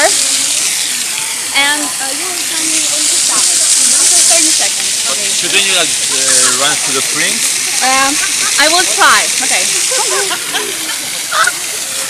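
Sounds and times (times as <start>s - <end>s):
fountain water splashing: 0.0s - 12.0s
people calling and murmuring: 0.0s - 12.0s.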